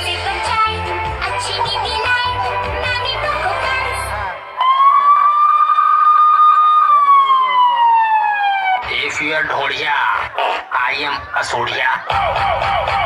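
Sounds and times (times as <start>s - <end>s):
dance music over loudspeakers: 0.0s - 4.8s, 8.8s - 13.0s
siren tone sliding down: 4.6s - 8.9s.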